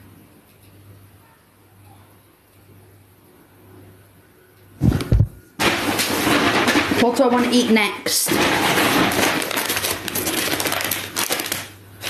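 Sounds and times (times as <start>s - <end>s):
paper bag rustling and crinkling: 8.3s - 12.0s.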